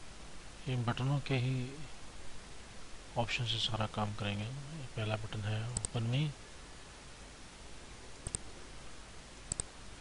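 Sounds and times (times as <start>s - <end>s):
faint steady hiss: 0.0s - 10.0s
computer mouse clicks: 5.7s - 6.0s, 8.2s - 8.5s, 9.5s - 9.7s.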